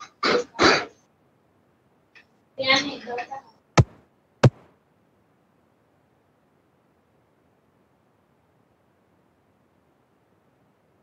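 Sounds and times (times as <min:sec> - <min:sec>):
person clearing their throat: 0:00.0 - 0:00.9.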